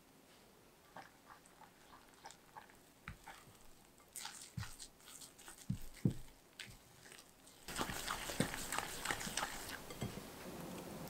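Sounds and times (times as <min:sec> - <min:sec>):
spatula scraping glass bowl: 0:00.9 - 0:10.2.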